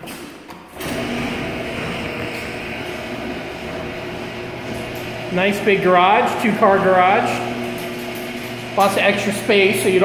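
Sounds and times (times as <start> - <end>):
garage door opener motor: 0.0 - 10.0.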